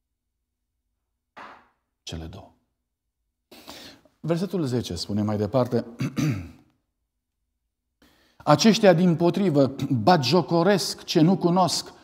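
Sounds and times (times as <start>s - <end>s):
man's voice: 8.5s - 12.0s.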